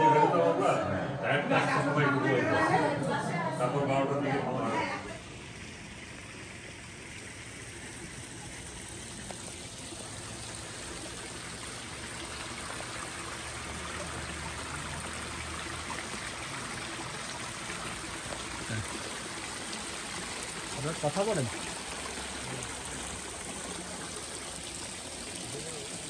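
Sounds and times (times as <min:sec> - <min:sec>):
water splashing into pond: 0:05.2 - 0:26.0.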